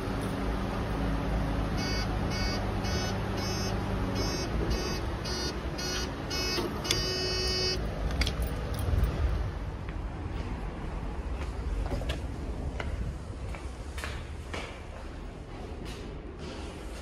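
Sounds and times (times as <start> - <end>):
ticket machine beeping: 1.8 - 7.8.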